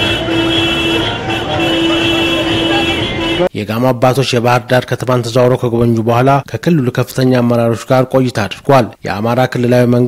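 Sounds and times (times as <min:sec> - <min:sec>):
slow traffic noise: 0:00.0 - 0:03.5
vehicle horns blasting: 0:00.0 - 0:03.5
voices: 0:00.0 - 0:03.5.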